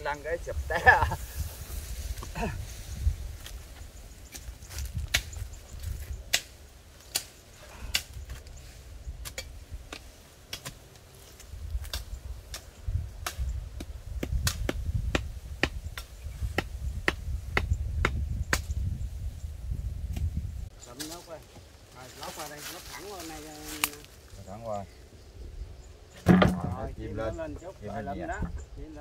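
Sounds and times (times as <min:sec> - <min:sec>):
machete chopping wood: 0:13.2 - 0:18.7, 0:26.2 - 0:26.8.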